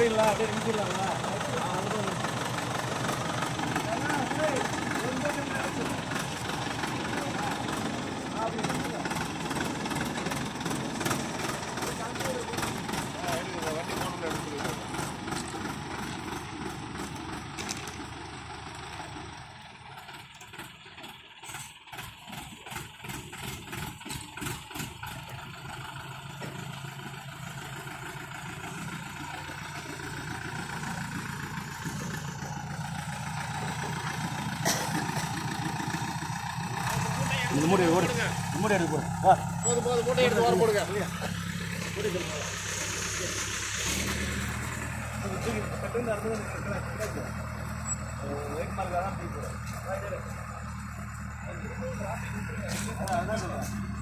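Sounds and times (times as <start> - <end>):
people talking: 0.0 - 2.5, 3.7 - 15.0, 36.8 - 43.6, 45.1 - 53.8
diesel engine running: 0.0 - 54.0.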